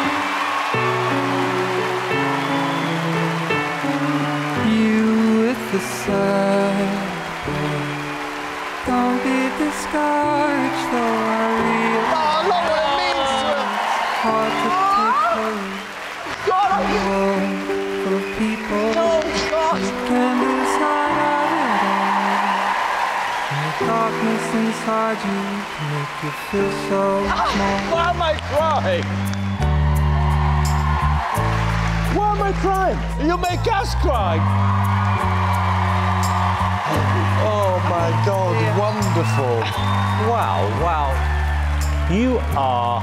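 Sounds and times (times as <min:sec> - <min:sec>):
whoops: 0:00.0 - 0:05.0, 0:06.8 - 0:42.1
audience cheering and applauding: 0:00.0 - 0:43.0
backing music of held chords: 0:23.7 - 0:43.0.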